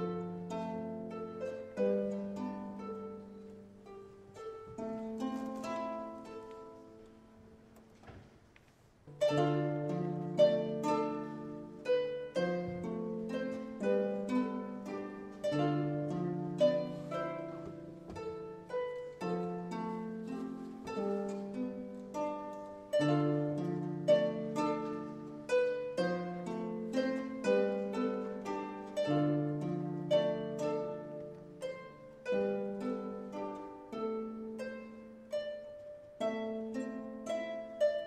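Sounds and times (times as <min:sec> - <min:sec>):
plucked string melody: 0:00.0 - 0:38.0.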